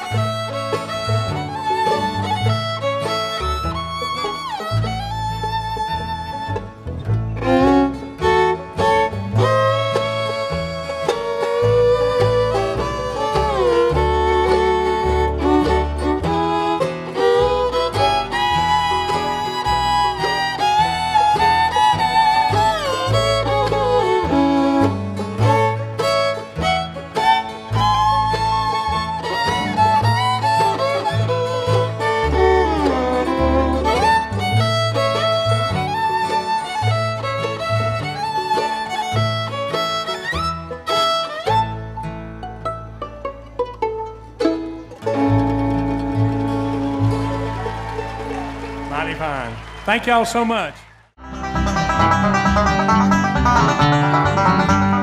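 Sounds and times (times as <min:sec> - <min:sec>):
fiddle playing sliding melody: 0:00.0 - 0:50.5, 0:51.2 - 0:55.0
guitar: 0:00.0 - 0:55.0
upright bass: 0:00.0 - 0:55.0.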